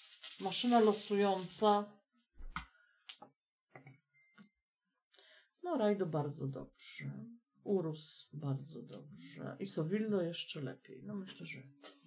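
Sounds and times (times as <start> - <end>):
marker clicking and scratching: 0.0 - 1.7.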